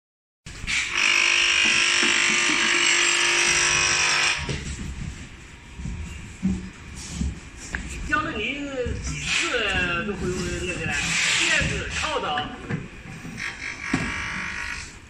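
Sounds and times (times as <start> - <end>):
sealing machine electric buzz: 0.6 - 4.8, 9.1 - 12.4, 13.2 - 15.0.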